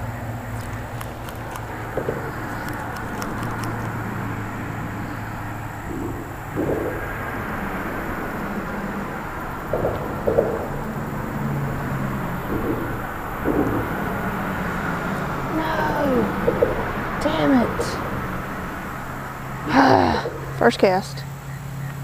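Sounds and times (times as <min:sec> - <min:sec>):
faint engine hum: 0:00.0 - 0:22.0
low rumble of road traffic: 0:00.0 - 0:22.0.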